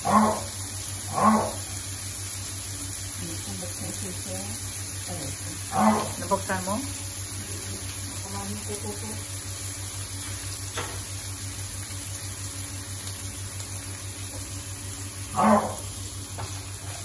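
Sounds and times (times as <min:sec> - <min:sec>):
pork sizzling in a wok: 0:00.0 - 0:17.0.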